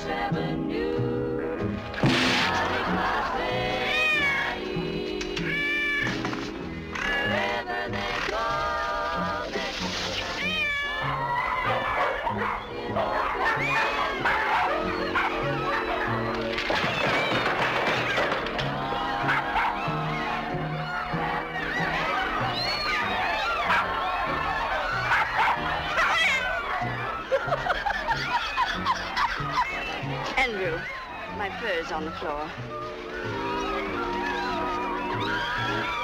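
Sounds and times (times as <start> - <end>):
cats meowing: 2.9 - 6.3, 10.0 - 36.0
cat meowing: 3.8 - 4.6, 5.4 - 6.1, 10.3 - 12.1, 25.1 - 27.0.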